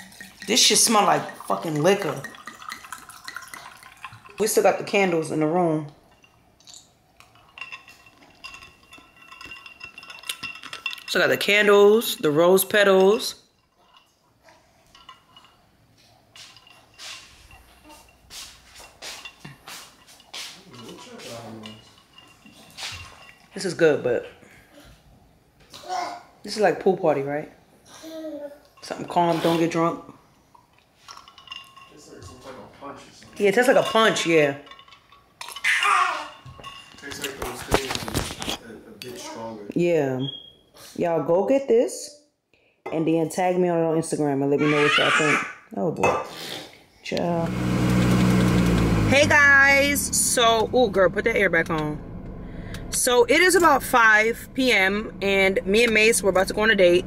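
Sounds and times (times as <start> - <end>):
ice cubes clinking in a tumbler: 0.0 - 5.2, 6.1 - 14.1, 16.4 - 23.7, 33.3 - 38.5.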